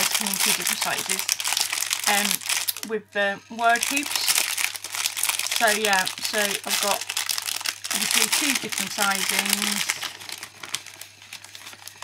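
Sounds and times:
plastic bags crinkling: 0:00.0 - 0:02.9, 0:03.6 - 0:12.0.

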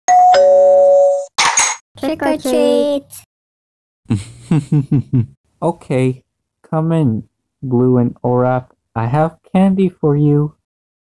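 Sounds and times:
two-note doorbell chime: 0:00.1 - 0:01.3.

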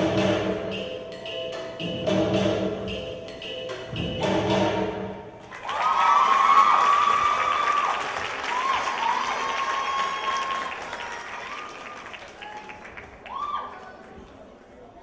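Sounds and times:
audience applauding: 0:05.5 - 0:14.2
high-pitched whoops and cheers: 0:05.6 - 0:14.0.

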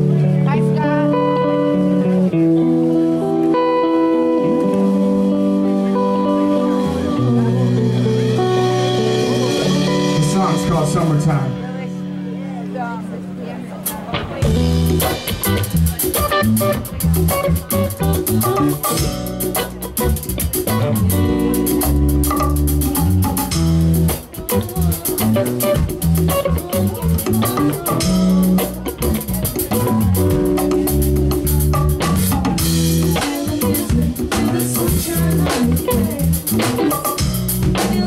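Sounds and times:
drum kit: 0:00.0 - 0:11.6, 0:13.8 - 0:38.0
bass guitar: 0:00.0 - 0:38.0
electric guitar: 0:00.0 - 0:38.0.

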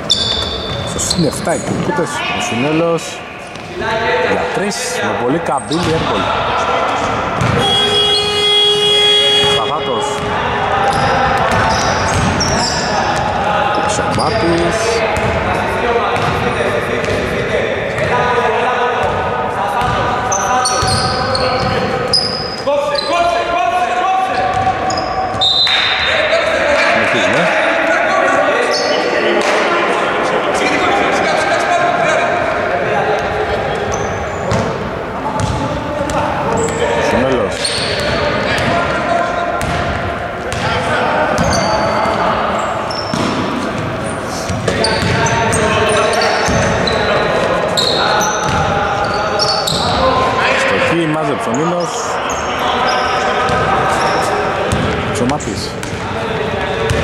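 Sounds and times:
players calling out: 0:00.0 - 0:57.0
basketball bouncing on hardwood: 0:07.4 - 0:07.7, 0:35.4 - 0:35.6.

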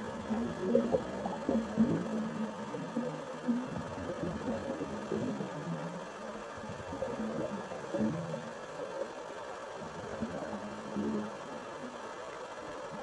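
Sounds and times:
underwater bubbles gurgling: 0:00.0 - 0:13.0.

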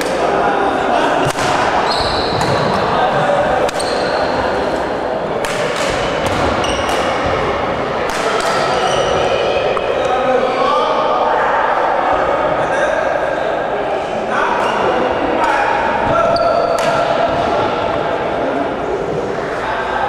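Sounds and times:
echoing background chatter: 0:00.0 - 0:20.0
rackets striking shuttlecock: 0:05.4 - 0:07.2.

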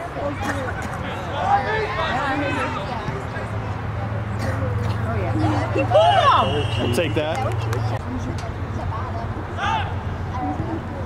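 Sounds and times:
people shouting on a field: 0:01.0 - 0:03.2, 0:05.5 - 0:07.2, 0:09.6 - 0:10.2
high-pitched yell: 0:05.8 - 0:06.8.

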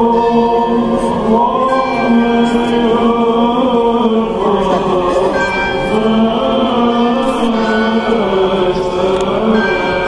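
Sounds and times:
voices chanting in unison: 0:00.0 - 0:10.0.

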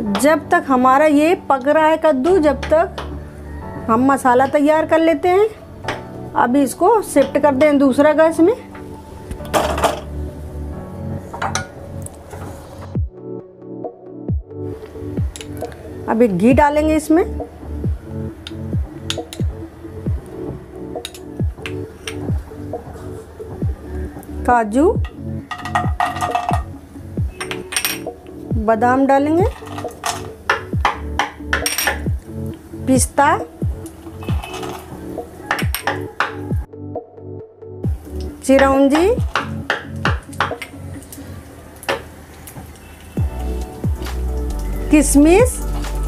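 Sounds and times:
background music: 0:00.0 - 0:46.0
pan clattering on burner grate: 0:09.5 - 0:10.1, 0:25.5 - 0:26.7, 0:29.5 - 0:32.1
background music with drum beat: 0:13.0 - 0:13.3, 0:14.3 - 0:14.6, 0:17.8 - 0:23.8, 0:25.0 - 0:28.7, 0:29.4 - 0:32.3, 0:33.5 - 0:36.7, 0:37.8 - 0:40.8, 0:43.2 - 0:44.6.

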